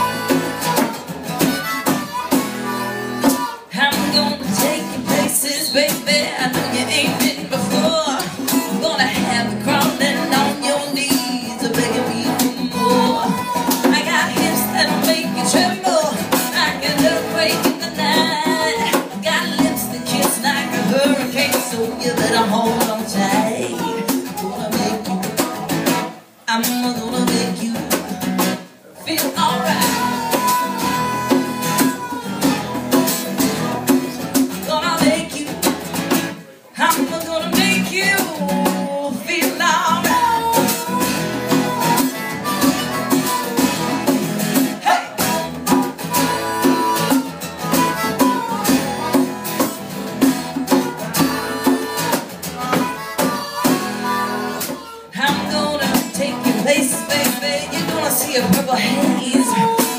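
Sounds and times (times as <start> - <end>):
harmonica solo: 0.0 - 4.6, 11.4 - 16.1, 29.6 - 33.8, 39.9 - 44.6, 45.2 - 55.6
hand drum: 0.0 - 59.9
strummed acoustic guitar: 0.0 - 59.9.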